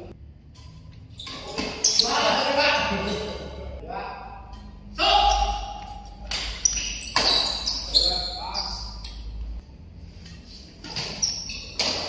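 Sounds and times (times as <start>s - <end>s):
shoes squeaking on court: 0.6s - 3.6s, 5.2s - 9.4s, 10.5s - 12.0s
racket striking shuttlecock: 11.7s - 12.0s.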